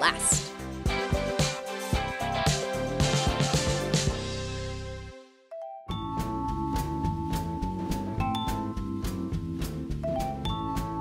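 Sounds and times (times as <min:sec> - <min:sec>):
music with steady drum beat: 0:00.0 - 0:04.8, 0:06.1 - 0:11.0.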